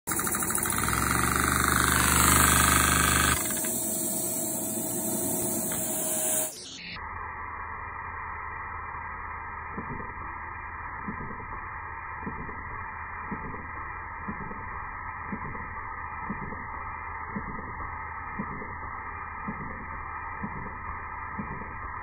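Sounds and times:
toy vacuum engine running: 0.1 - 6.6.

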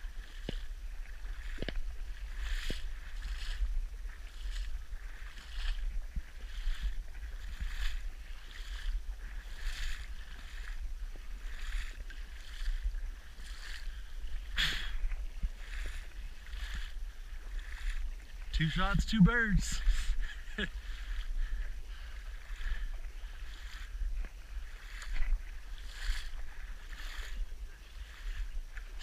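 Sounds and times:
paddle splashing through water: 0.0 - 29.0
wind rumble on microphone: 0.0 - 29.0.

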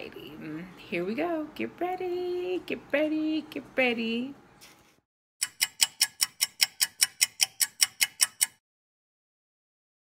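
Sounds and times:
clock ticking: 5.4 - 8.6.

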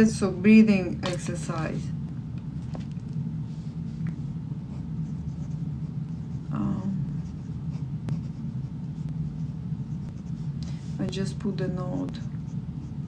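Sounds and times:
steady low hum: 0.0 - 13.0
pen writing on paper: 4.7 - 6.5, 7.1 - 10.5.

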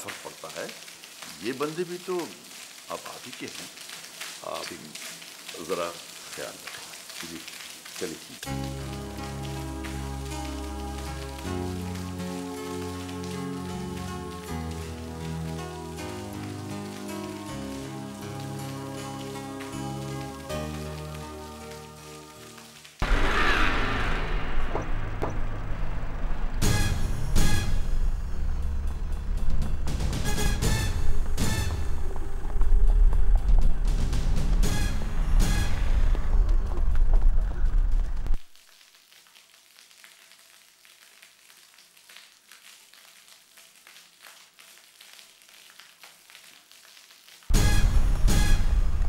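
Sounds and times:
fountain water splashing: 0.0 - 24.3.

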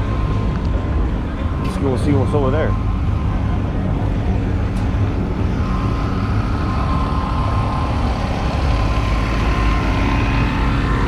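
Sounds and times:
generator engine rumble: 0.0 - 11.0
generator whine: 0.0 - 11.0.

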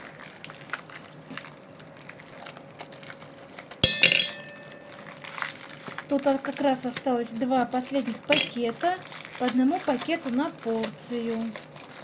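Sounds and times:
plastic bag crinkling: 0.0 - 12.0
ice clinking into metal tin: 3.8 - 5.2.

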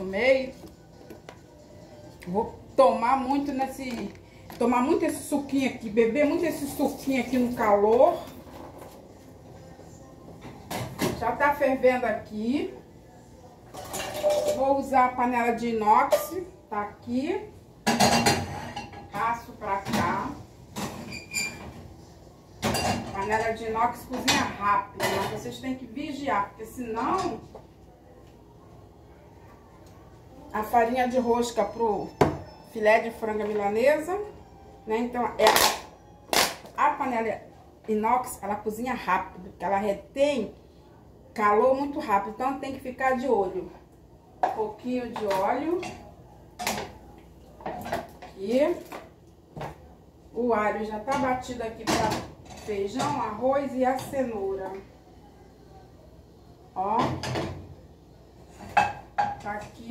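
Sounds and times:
cookware clacking: 13.7 - 14.7.

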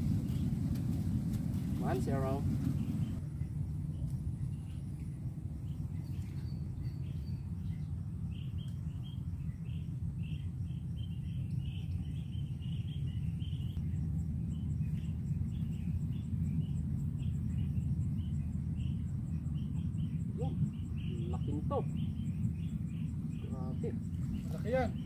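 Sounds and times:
low rumble: 0.0 - 25.0
small birds chirping: 0.0 - 25.0.

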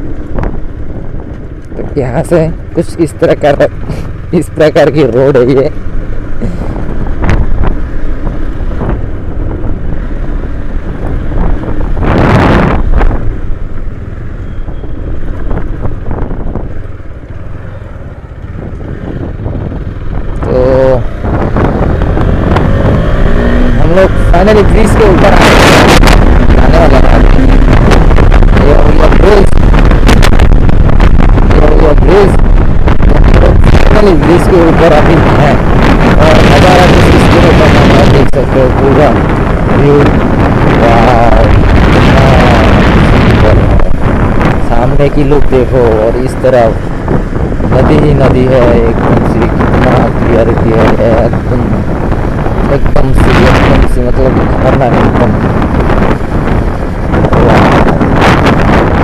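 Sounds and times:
motorcycle engine running: 0.0 - 59.0
wind buffeting microphone: 0.0 - 59.0.

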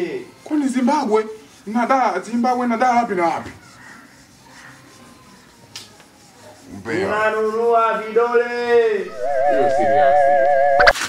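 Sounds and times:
faint steady background noise: 0.0 - 11.0.

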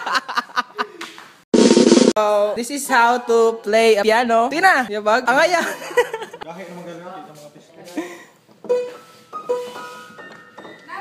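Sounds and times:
snare drum roll: 1.6 - 2.2.

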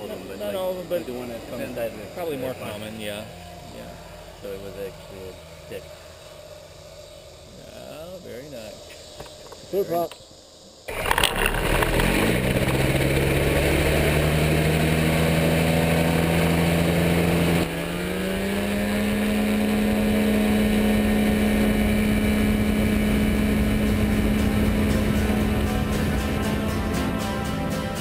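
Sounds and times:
aircraft engine and propeller: 10.9 - 28.0.

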